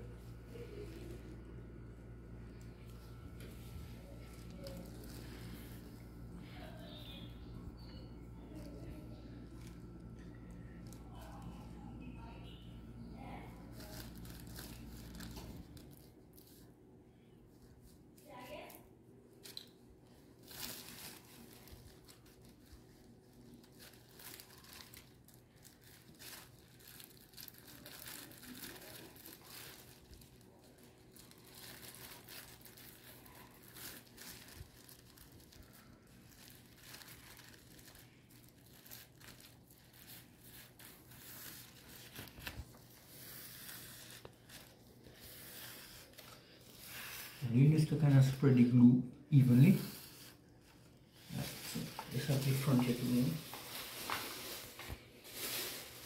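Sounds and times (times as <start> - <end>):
plastic sheeting crinkling: 0.0 - 16.8, 17.5 - 56.0.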